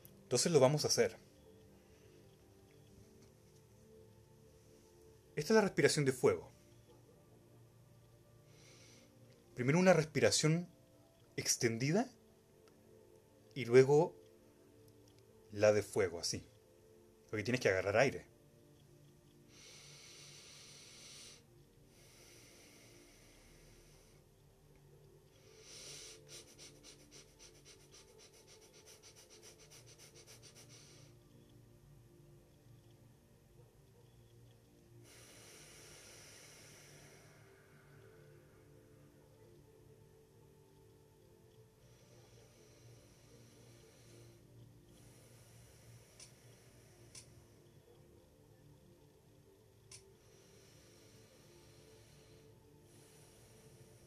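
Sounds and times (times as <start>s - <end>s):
faint steady hum: 0.0s - 54.0s
man breathing slowly: 6.5s - 9.6s, 18.4s - 32.2s, 32.8s - 49.0s, 49.9s - 54.0s
rapid forceful breathing: 8.2s - 9.4s, 19.4s - 24.6s, 25.3s - 31.5s, 34.2s - 39.4s, 40.0s - 48.6s, 49.9s - 54.0s.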